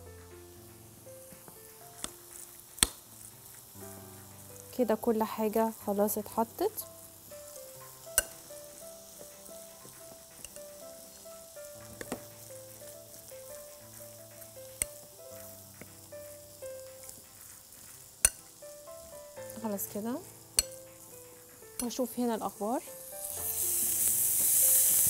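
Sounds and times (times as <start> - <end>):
frying pan sizzle: 0.0 - 25.0
soft background music: 0.0 - 25.0.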